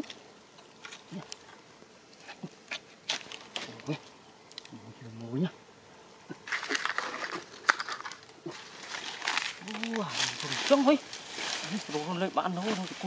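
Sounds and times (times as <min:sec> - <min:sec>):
rustling: 0:00.0 - 0:05.0, 0:06.0 - 0:13.0
insect buzzing: 0:00.0 - 0:13.0.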